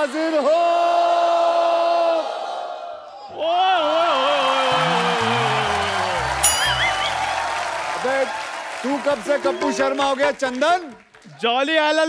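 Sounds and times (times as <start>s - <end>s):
man shouting long call: 4.4s - 7.1s.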